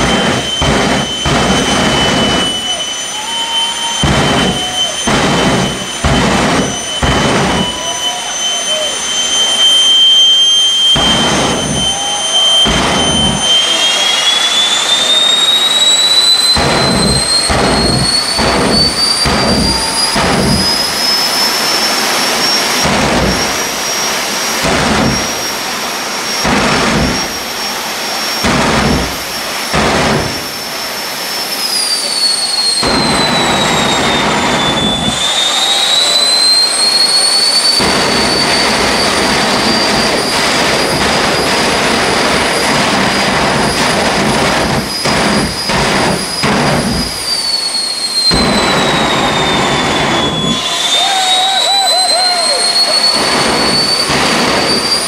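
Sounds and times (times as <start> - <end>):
afterburner blasts: 0.0 - 55.0
afterburner steady rush: 0.0 - 55.0
jet engine whine: 0.0 - 55.0.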